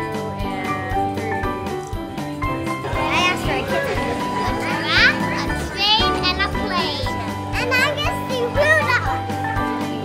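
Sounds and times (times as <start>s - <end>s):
background music: 0.0s - 10.0s
child speaking in a high voice: 4.7s - 9.2s.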